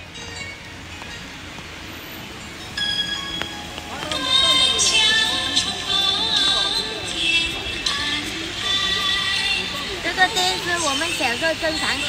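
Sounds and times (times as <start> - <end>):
rain on umbrella and pavement: 0.0 - 12.0.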